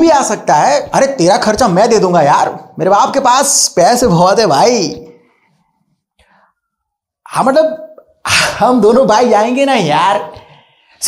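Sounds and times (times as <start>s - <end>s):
man speaking: 0.0s - 5.2s, 7.2s - 10.6s.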